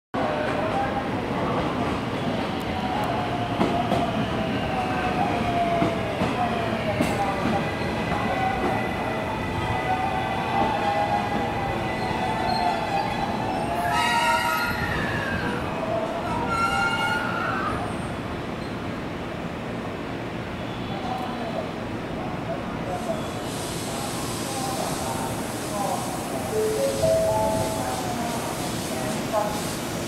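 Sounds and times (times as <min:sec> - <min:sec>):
train wheels running on rails: 0:00.2 - 0:18.7, 0:22.9 - 0:30.0
higher tones: 0:26.4 - 0:28.2.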